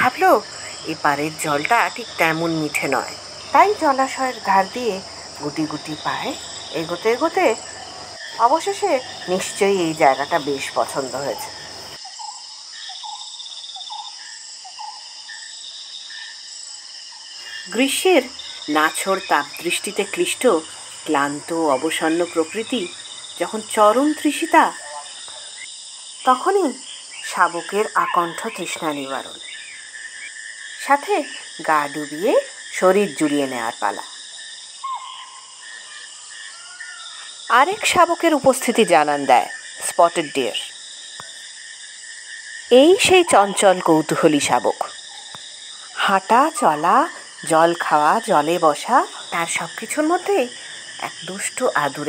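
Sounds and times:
high-pitched insect drone: 0:00.0 - 0:52.0.

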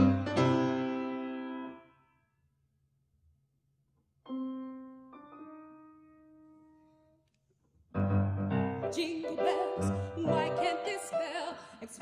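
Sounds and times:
grand piano playing: 0:00.0 - 0:01.9, 0:04.3 - 0:07.0, 0:07.9 - 0:11.9.

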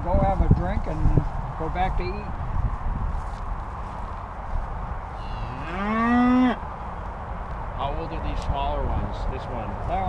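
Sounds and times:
cow mooing: 0:05.2 - 0:06.6.

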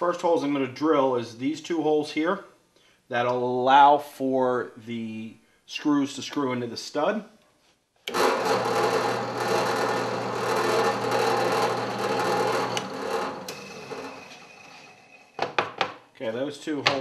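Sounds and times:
drill press boring plywood: 0:08.1 - 0:15.5.

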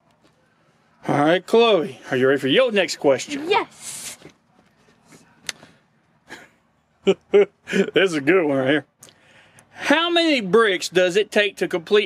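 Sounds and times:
faint shuffling: 0:03.0 - 0:06.2.

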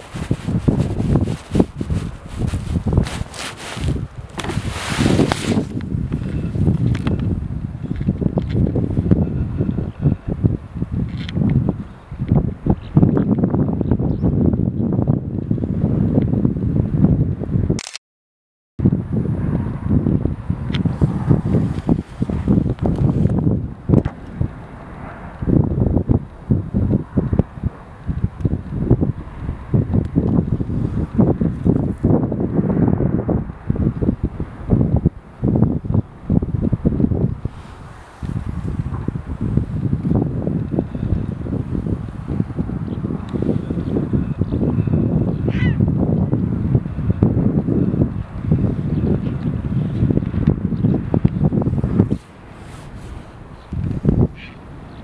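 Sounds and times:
wind buffeting microphone: 0:00.0 - 0:17.9, 0:18.8 - 0:55.0.

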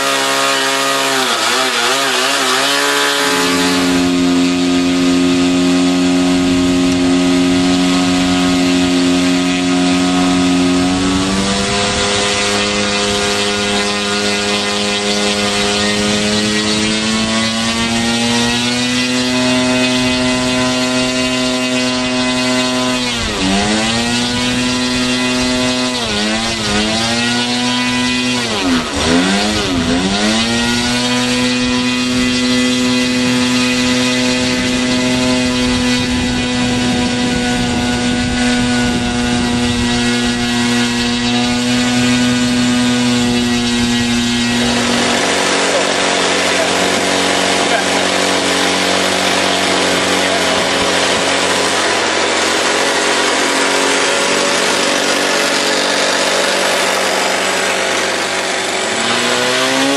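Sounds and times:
model aircraft engine running: 0:00.0 - 0:59.9.

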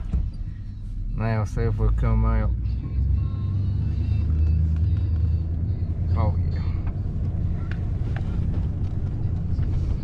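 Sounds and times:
truck engine rumbling: 0:00.0 - 0:10.0.

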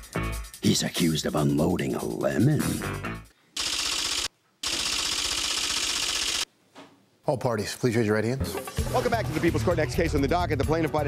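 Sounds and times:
rapid rattling clicks: 0:03.6 - 0:06.5.

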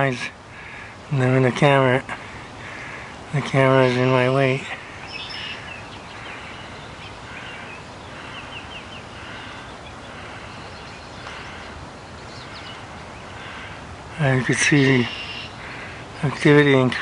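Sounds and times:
birds chirping: 0:00.0 - 0:17.0
steady background hiss: 0:00.0 - 0:17.0.

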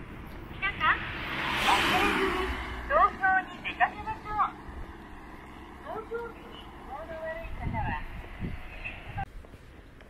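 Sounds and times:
car passing by: 0:00.4 - 0:09.3.

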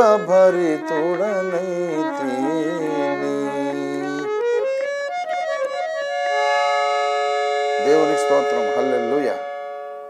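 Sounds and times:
electronic keyboard chord: 0:00.0 - 0:10.0
man speaking: 0:07.8 - 0:09.4.

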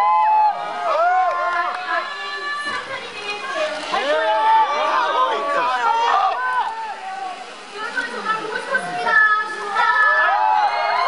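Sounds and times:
concert crowd shouting and cheering: 0:00.0 - 0:11.0.

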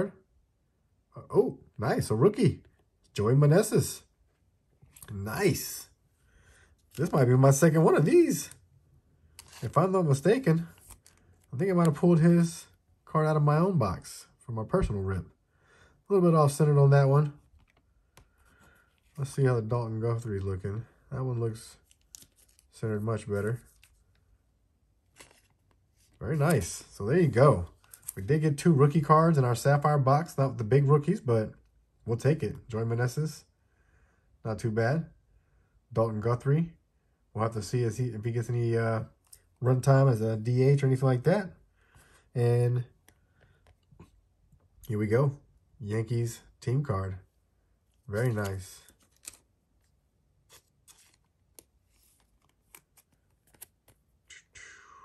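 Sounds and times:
card rustling against plastic sleeve: 0:04.8 - 0:12.8, 0:16.4 - 0:29.6, 0:47.8 - 0:54.3.

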